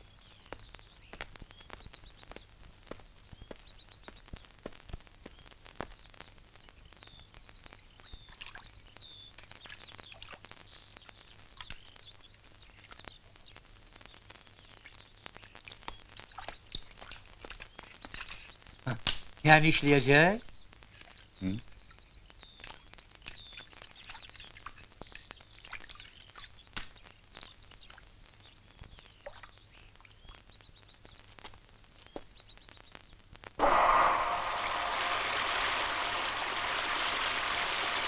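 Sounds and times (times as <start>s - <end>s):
small birds chirping: 0.0s - 33.6s.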